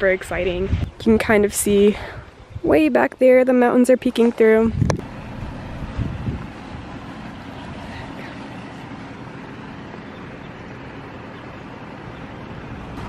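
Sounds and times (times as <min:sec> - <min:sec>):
wind noise on microphone: 0:00.0 - 0:03.1, 0:04.1 - 0:07.0
low rumble: 0:04.6 - 0:13.0.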